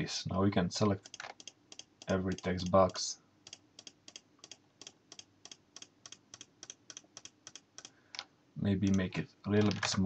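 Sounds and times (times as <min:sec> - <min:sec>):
computer mouse clicking: 0:01.0 - 0:08.3.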